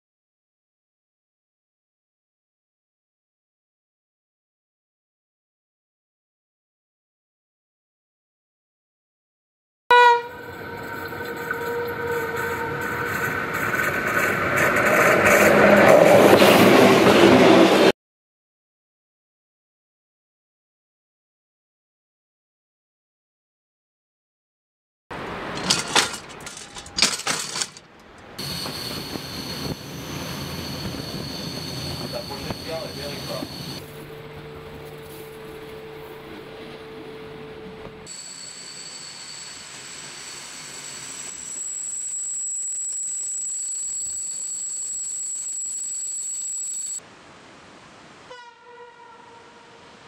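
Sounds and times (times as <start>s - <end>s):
train horn: 9.9s - 14.1s, 48.3s - 50.0s
train wheels rolling on track: 10.4s - 17.9s, 25.2s - 33.8s
metallic clacks of rail joints: 25.2s - 28.8s
thin high whine: 28.4s - 36.4s, 38.1s - 47.0s.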